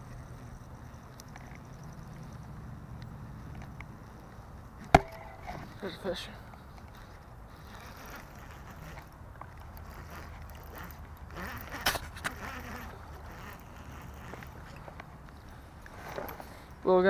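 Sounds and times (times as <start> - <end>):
fishing reel being cranked: 0.2 - 2.6, 6.8 - 16.5.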